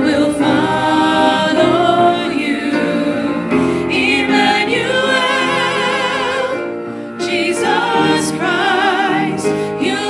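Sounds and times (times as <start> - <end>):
band with keyboard and guitar: 0.0 - 10.0
voices singing in harmony: 0.0 - 10.0.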